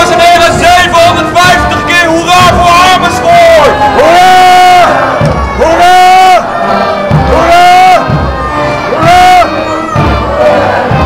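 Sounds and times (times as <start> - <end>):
loud drawn-out shouts: 0.0 - 11.0.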